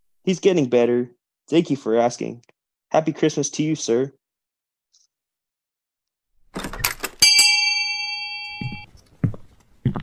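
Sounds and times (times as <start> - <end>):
small bell ringing: 7.2 - 8.9.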